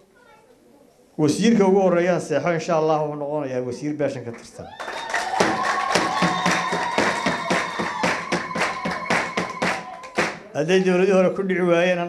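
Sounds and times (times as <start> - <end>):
audience clapping in rhythm: 4.3 - 10.6.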